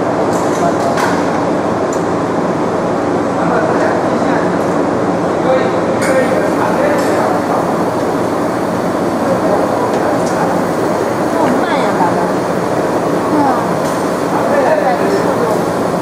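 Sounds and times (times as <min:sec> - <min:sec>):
loud machinery noise: 0:00.0 - 0:16.0.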